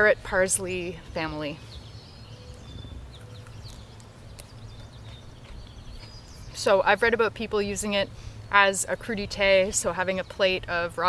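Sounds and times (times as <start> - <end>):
steady low rumble: 0.0 - 8.1.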